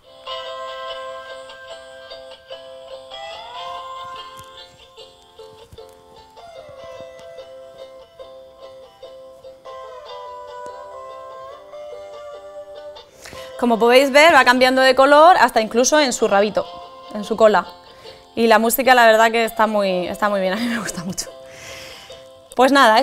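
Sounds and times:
toy playing light melody: 0.0s - 14.4s, 15.5s - 23.0s.

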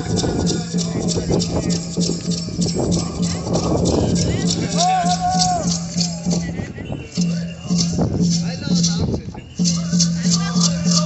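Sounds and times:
long held vocal call: 0.0s - 6.5s
rattles shaking: 0.0s - 11.0s
voices chanting: 0.0s - 11.0s.

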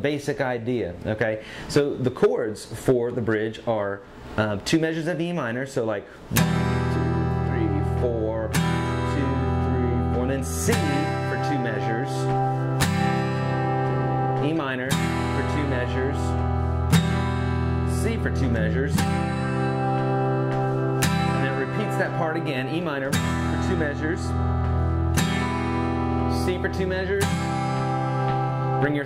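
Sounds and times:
acoustic guitar strummed chord: 6.4s - 29.0s.

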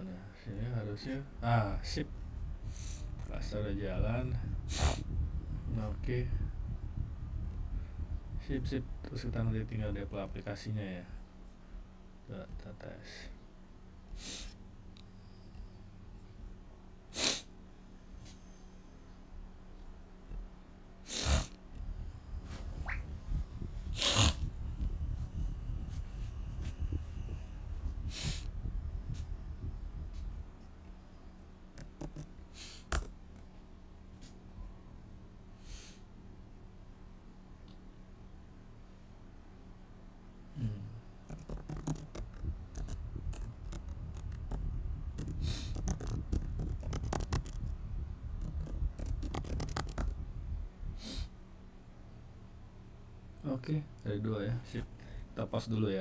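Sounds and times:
low rumbling background: 0.0s - 17.1s, 17.8s - 35.6s, 36.3s - 56.0s
sharp nasal breaths: 17.1s - 17.5s, 21.0s - 21.6s
keyboard typing: 41.2s - 44.6s, 45.2s - 47.7s, 48.4s - 50.2s.

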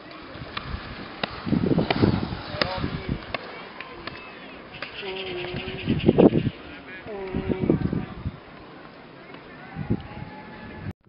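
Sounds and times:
people calling out: 6.6s - 8.2s
long held shout: 9.5s - 10.9s.

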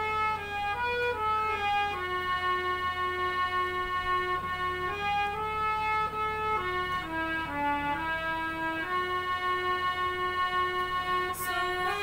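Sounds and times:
harmonium playing melody: 0.0s - 12.0s.

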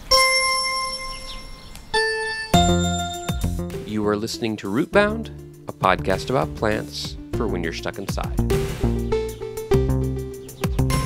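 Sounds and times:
bell-like chime notes: 0.0s - 3.6s.

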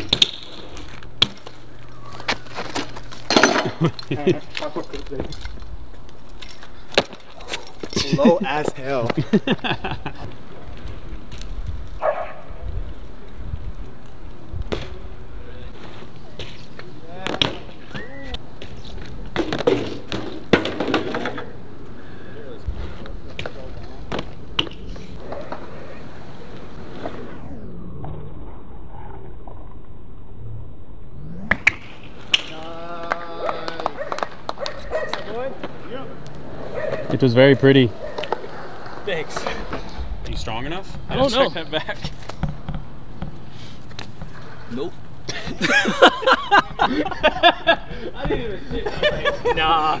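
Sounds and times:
bike tyres rolling on concrete: 0.0s - 30.5s, 31.5s - 50.0s
bike landing clacks and thuds: 18.6s - 21.5s.

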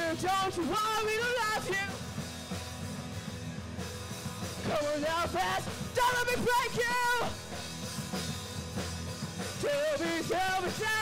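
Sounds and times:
drum kit: 0.0s - 11.0s.

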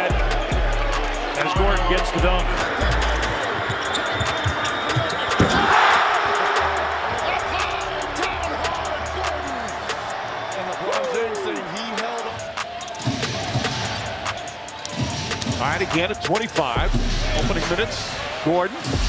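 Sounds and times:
arena crowd cheering: 0.0s - 19.0s
background music: 0.0s - 19.0s.

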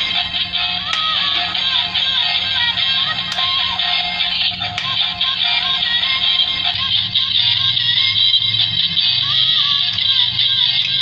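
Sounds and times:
toy car electronic tune: 0.0s - 11.0s
toy motor humming: 0.0s - 11.0s.

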